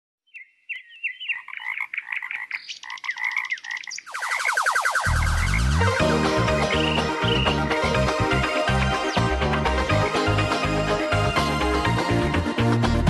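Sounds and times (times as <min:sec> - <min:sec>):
frog croaking: 0:01.3 - 0:04.4
dense fast calls: 0:02.2 - 0:07.7
music with bass line: 0:05.1 - 0:13.0.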